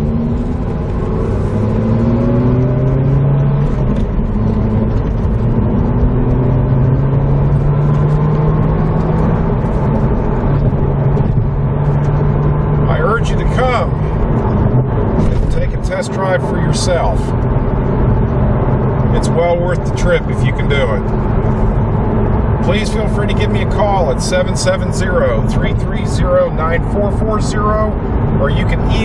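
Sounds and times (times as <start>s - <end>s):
car engine accelerating: 0.0s - 29.0s
road noise: 0.0s - 29.0s.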